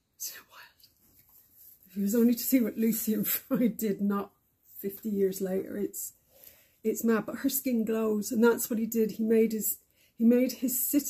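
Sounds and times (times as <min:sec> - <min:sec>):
woman's voice: 0:01.9 - 0:06.1, 0:06.9 - 0:11.0.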